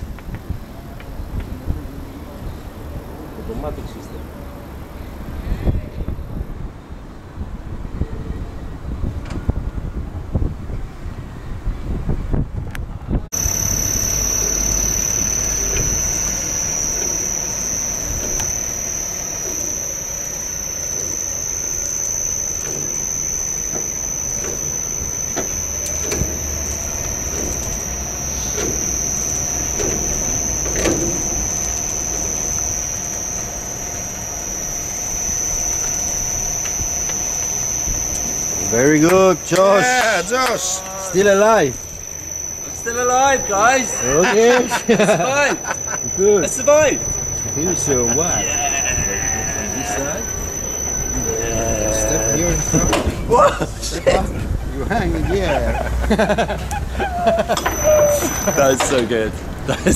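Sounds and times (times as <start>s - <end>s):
high-pitched whine: 0.0s - 6.6s, 13.3s - 59.9s
wind buffeting microphone: 5.2s - 13.3s
scattered clicks: 13.4s - 42.0s.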